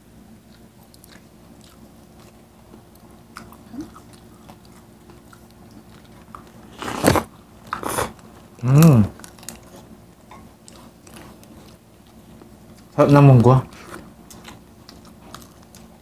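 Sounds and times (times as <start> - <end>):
soft chewing: 0.1 - 16.0
loud crunchy bite: 6.6 - 8.2.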